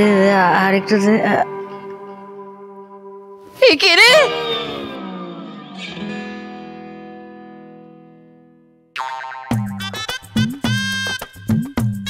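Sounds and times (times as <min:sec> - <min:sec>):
background music: 0:00.0 - 0:12.0
woman screaming: 0:03.6 - 0:05.0.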